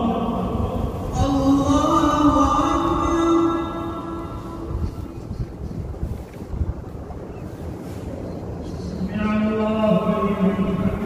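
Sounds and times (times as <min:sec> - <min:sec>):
wind rumble on microphone: 0:00.0 - 0:11.0
microphone handling noise: 0:04.2 - 0:09.9.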